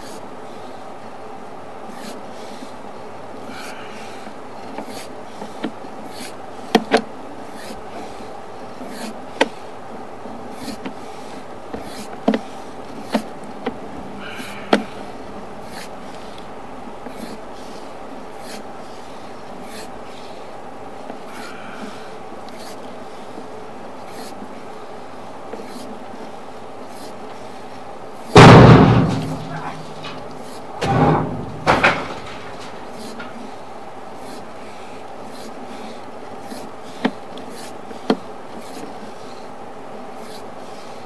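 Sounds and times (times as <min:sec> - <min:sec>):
sewer camera cable hum: 0:00.0 - 0:41.0
sharp knocks in pipe: 0:28.4 - 0:30.2.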